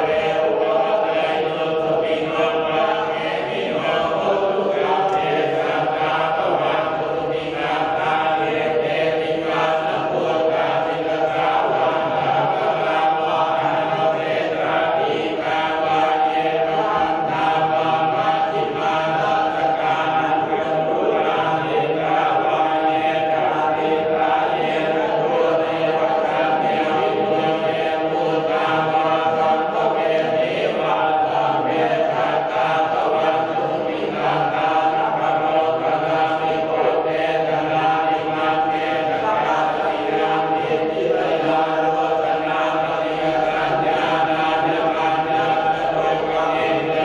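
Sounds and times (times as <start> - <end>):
monks chanting in unison: 0.0 - 47.0.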